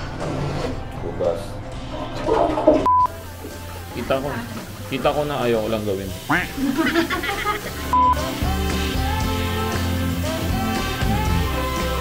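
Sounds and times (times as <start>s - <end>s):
soft background music: 0.0s - 12.0s
short electronic beep: 2.8s - 3.1s.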